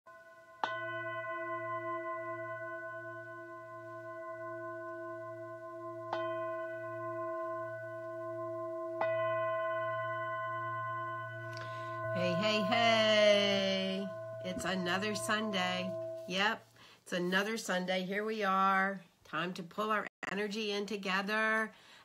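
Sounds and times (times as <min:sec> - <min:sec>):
singing bowl ringing: 0:00.1 - 0:16.6.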